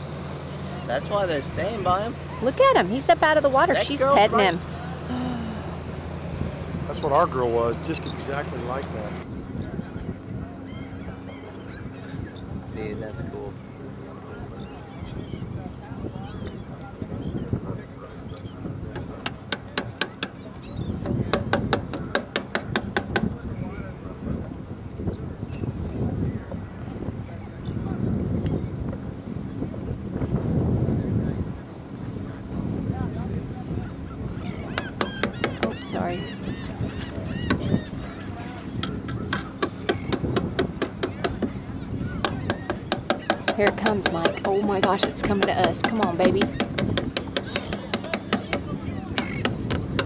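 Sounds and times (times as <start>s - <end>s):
gulls calling: 0.0s - 29.7s, 31.2s - 50.0s
faint voices: 0.0s - 50.0s
wind rumbling on microphone: 0.0s - 50.0s.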